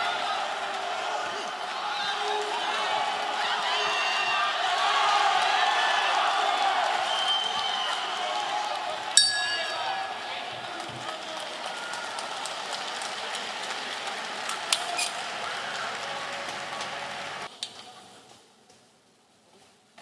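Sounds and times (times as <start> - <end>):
crowd noise: 0.0 - 18.7
round bell ringing: 9.2 - 10.6.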